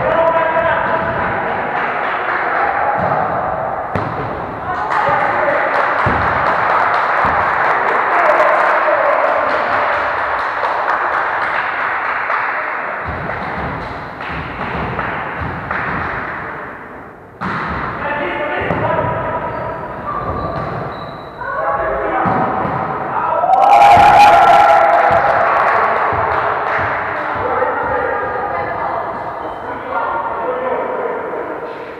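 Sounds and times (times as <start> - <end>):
babble of players' voices: 0.0 - 10.4, 24.8 - 31.9
volleyball thudding: 2.9 - 7.8, 13.0 - 16.4, 17.4 - 19.3, 22.2 - 28.6.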